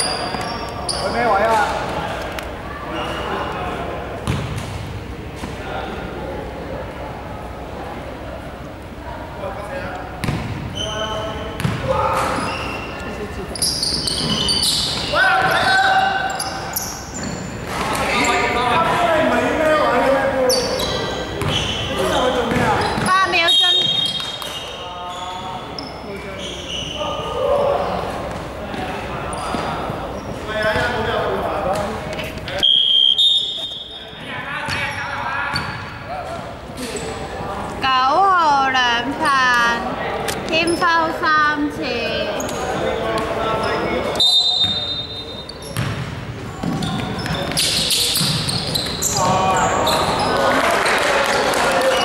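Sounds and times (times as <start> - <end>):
ball bouncing on wooden court: 4.2 - 4.8, 10.2 - 10.7, 11.6 - 12.2, 21.4 - 21.7, 45.7 - 49.4
players shouting: 14.1 - 16.8
referee whistle blasts: 32.6 - 34.0, 44.2 - 45.5.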